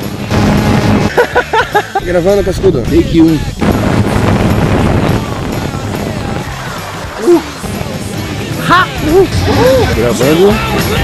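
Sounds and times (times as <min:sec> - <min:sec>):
wind on microphone: 0:02.4 - 0:10.0.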